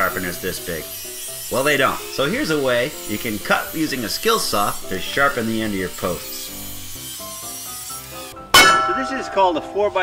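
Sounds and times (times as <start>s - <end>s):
sledgehammer clang on steel: 8.6s - 9.7s.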